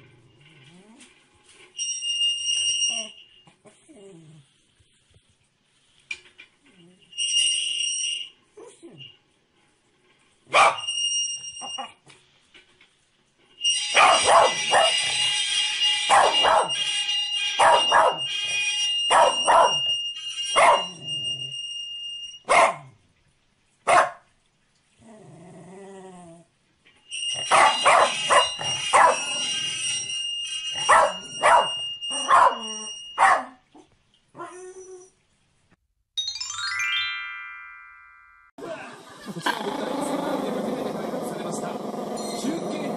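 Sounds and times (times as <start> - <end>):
dog whining: 2.6 - 4.5, 8.6 - 9.2, 10.6 - 12.0, 27.3 - 29.7, 30.8 - 35.2, 39.2 - 42.9
dog barking: 10.5 - 10.9, 14.0 - 15.0, 16.1 - 16.8, 17.6 - 18.2, 19.1 - 19.9, 20.6 - 21.0, 22.5 - 23.0, 23.9 - 24.3, 27.5 - 29.3, 30.8 - 33.6
high-pitched tone: 36.2 - 38.5.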